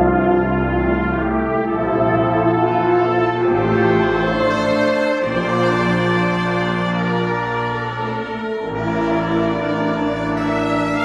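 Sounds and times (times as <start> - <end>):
brass choir holding a chord: 0.0 - 11.0.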